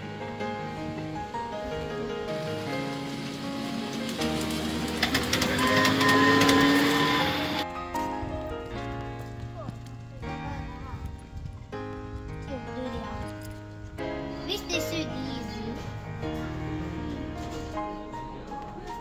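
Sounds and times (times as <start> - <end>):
background music with held notes: 0.0 - 19.0.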